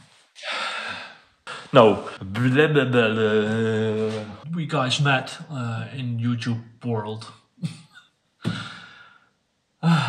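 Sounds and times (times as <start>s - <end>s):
man sighing: 0.4s - 2.2s, 8.4s - 9.2s
man speaking: 1.5s - 7.8s.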